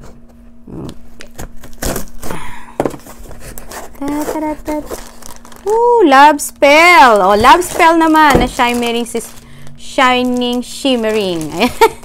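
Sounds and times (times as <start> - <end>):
faint steady hum: 0.0 - 12.0
scissors cutting packing tape: 0.8 - 2.4, 3.5 - 5.2
cardboard flaps scraping and rustling: 7.2 - 9.4.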